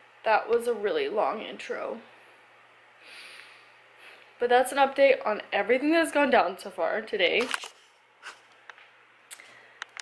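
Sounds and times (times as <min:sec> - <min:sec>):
low steady hum: 0:00.0 - 0:10.0
person exhaling softly: 0:03.0 - 0:04.3.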